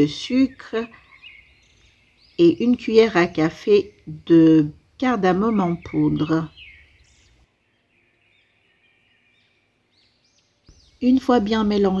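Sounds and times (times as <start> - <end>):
faint bird chirps: 0.2 - 4.1, 5.4 - 12.0.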